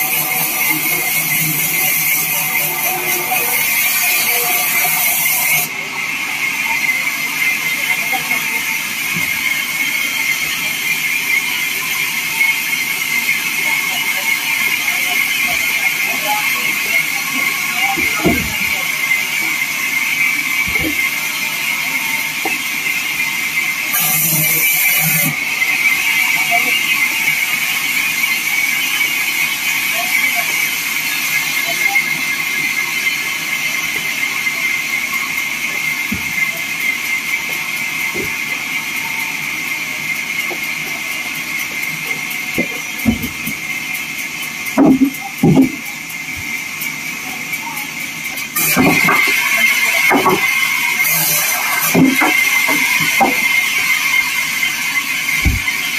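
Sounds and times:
bandsaw whining through wood: 0.0s - 47.5s, 48.2s - 55.9s.

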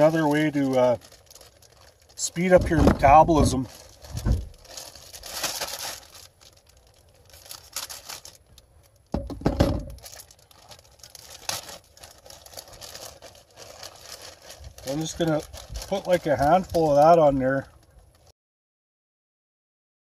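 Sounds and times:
plastic bag crinkling: 0.0s - 18.3s.

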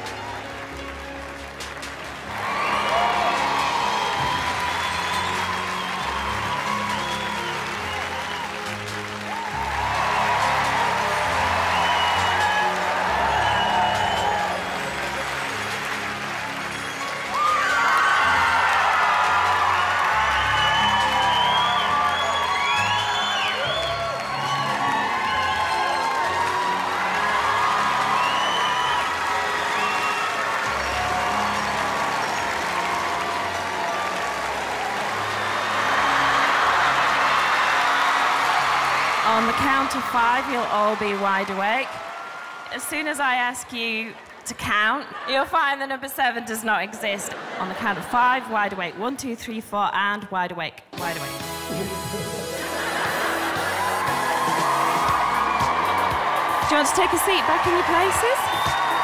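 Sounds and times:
audience cheering and applauding: 0.0s - 48.5s, 51.0s - 59.0s
background music with bass line: 51.0s - 56.8s.

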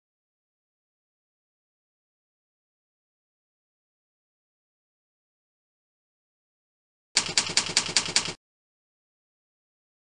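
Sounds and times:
typewriter keystrokes: 7.2s - 8.4s.

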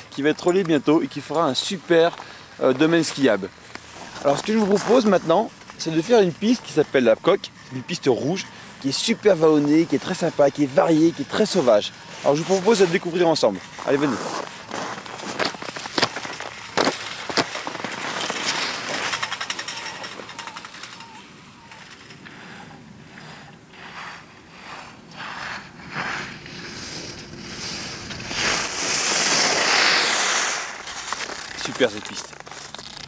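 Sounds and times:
skis scraping over snow: 0.9s - 19.9s, 22.3s - 33.0s.

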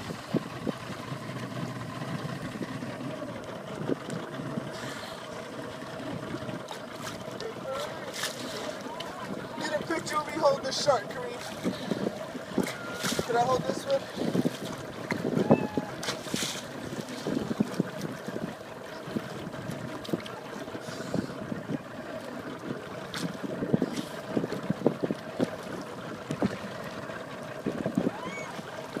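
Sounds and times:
wind buffeting microphone: 0.0s - 4.8s, 7.9s - 29.0s
water lapping and splashing: 0.0s - 29.0s.

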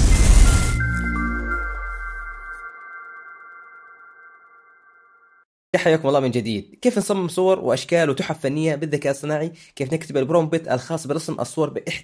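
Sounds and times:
high chime-like tones: 0.0s - 5.5s.

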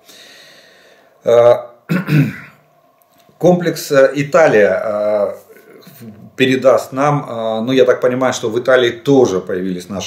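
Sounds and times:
man clearing throat: 1.4s - 2.6s.

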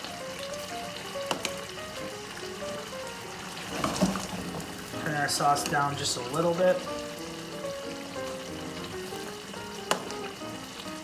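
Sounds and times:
sauce sizzling in frying pan: 0.0s - 11.0s
soft background music: 0.0s - 11.0s.

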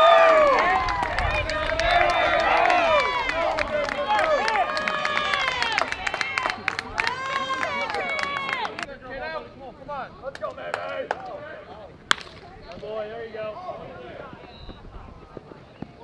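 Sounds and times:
players shouting and cheering: 0.0s - 14.5s
bat hitting ball: 12.1s - 12.9s.

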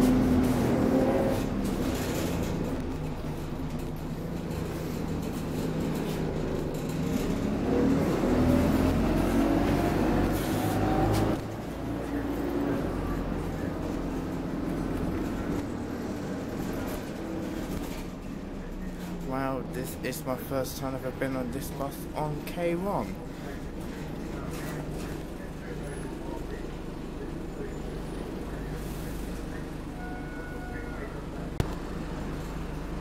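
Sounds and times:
bus engine running: 0.0s - 33.0s.

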